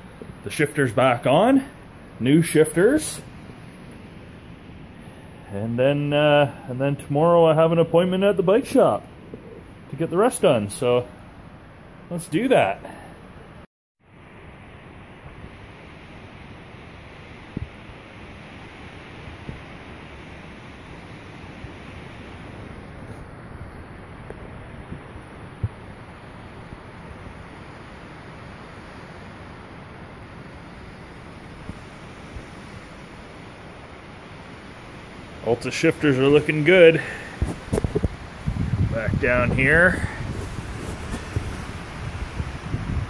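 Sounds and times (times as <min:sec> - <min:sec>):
wind noise on microphone: 0:16.3 - 0:29.7, 0:30.4 - 0:34.7, 0:36.4 - 0:43.0.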